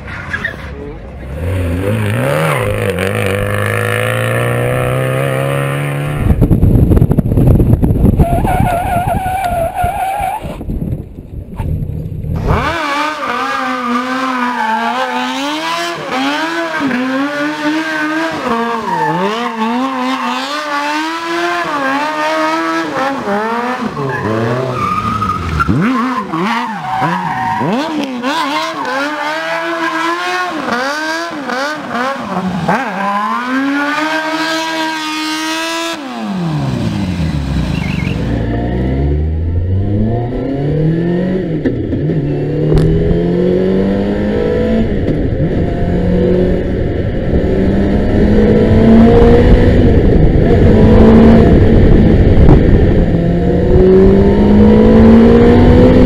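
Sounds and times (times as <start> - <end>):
car engine revving: 0.8 - 6.6, 12.4 - 56.0
tyre squealing: 8.2 - 10.6.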